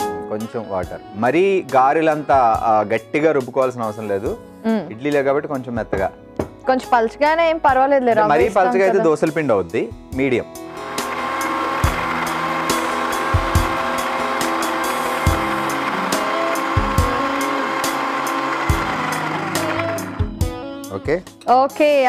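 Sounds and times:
electric mixer grinder running: 10.6 - 20.4.

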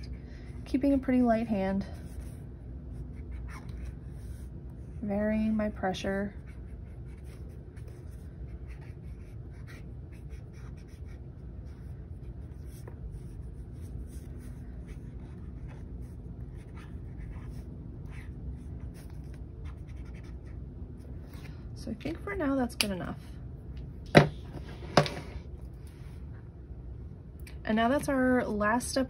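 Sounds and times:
steady low hum: 0.0 - 29.0
marker stroking on paper: 6.4 - 11.2, 11.8 - 20.6.

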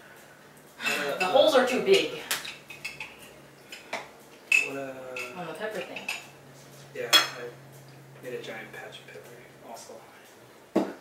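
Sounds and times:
steady low hum: 0.0 - 11.0
forks clinking on plates: 0.8 - 6.3, 7.1 - 7.5.

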